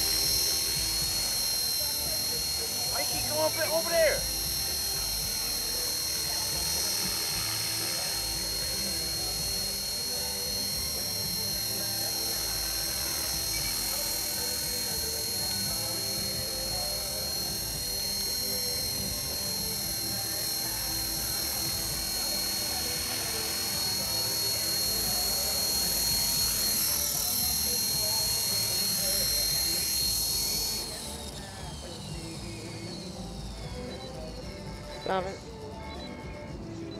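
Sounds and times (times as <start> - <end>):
rc helicopter motor whine: 0.0 - 36.9.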